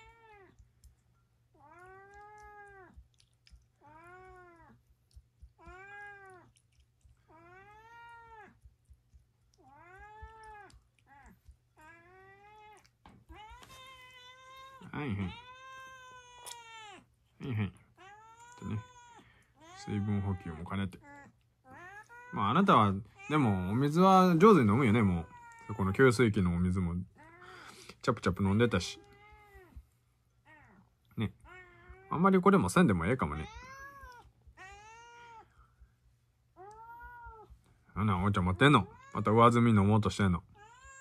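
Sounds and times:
cat meowing: 0:00.0 - 0:00.6, 0:01.5 - 0:04.8, 0:05.5 - 0:06.6, 0:07.3 - 0:08.7, 0:09.5 - 0:17.1, 0:18.0 - 0:24.0, 0:24.6 - 0:26.0, 0:28.8 - 0:29.8, 0:30.4 - 0:32.2, 0:33.2 - 0:35.5, 0:36.6 - 0:37.6, 0:38.6 - 0:39.4, 0:40.5 - 0:41.0.

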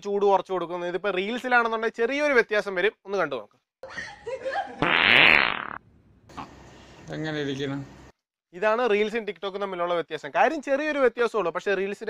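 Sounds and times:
fart sound: 0:04.8 - 0:06.5.

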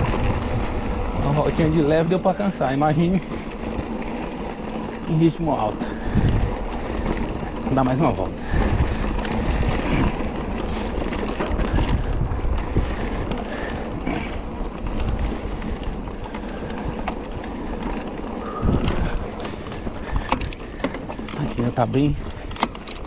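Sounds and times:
bike rattling on rough ground: 0:00.0 - 0:23.0
wind buffeting microphone: 0:00.0 - 0:23.0.

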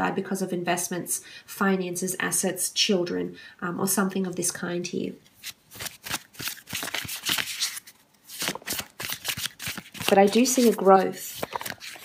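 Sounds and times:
cards being shuffled: 0:05.3 - 0:12.0.

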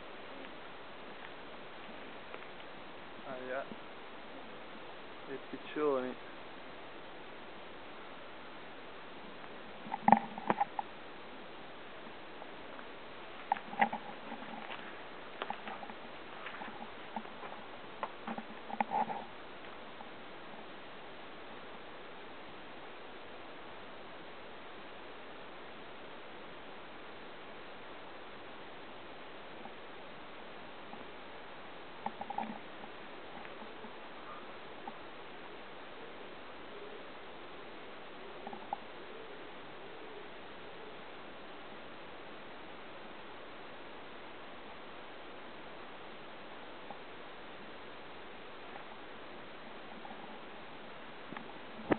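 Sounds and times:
background hiss: 0:00.0 - 0:51.9
footsteps: 0:13.4 - 0:19.2.

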